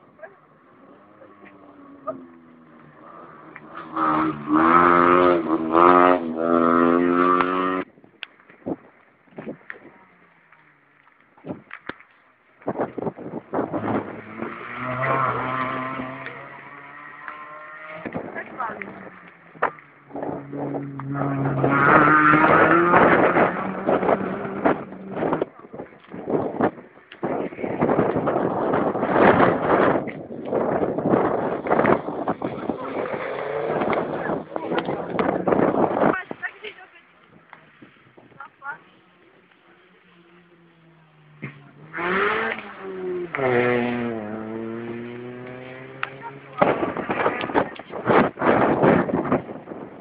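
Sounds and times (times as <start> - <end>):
rally car engine passing: 0.0 - 7.9, 13.4 - 36.1, 38.8 - 50.0.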